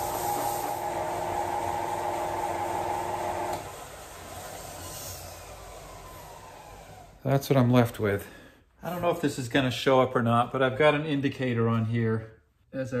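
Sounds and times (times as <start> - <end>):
sander winding down: 0.0 - 7.5.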